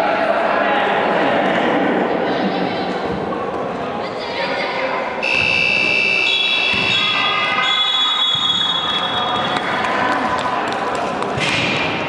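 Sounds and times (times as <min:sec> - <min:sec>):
voices echoing: 0:00.0 - 0:12.0
ball thumps: 0:06.7 - 0:07.0.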